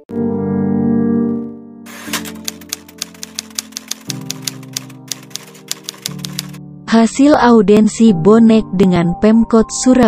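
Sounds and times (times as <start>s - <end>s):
sustained keyboard chords: 1.3s - 6.9s
typewriter key clacks: 1.9s - 6.6s.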